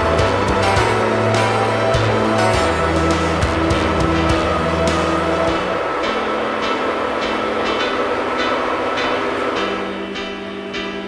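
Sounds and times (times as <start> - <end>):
light percussion beat: 0.0 - 5.8
sustained low music notes: 0.0 - 11.0.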